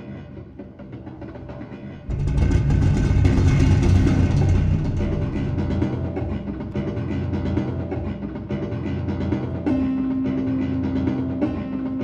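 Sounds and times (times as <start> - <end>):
tapped stringed instrument: 2.0 - 7.0.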